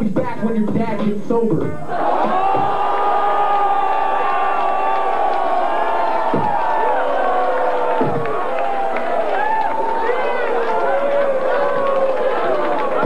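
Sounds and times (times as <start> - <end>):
crowd yelling and cheering: 1.7 - 13.0.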